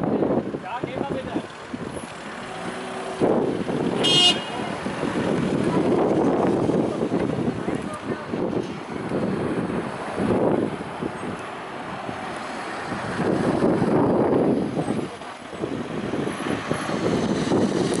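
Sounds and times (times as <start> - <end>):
road traffic rushing by: 0.0 - 18.0.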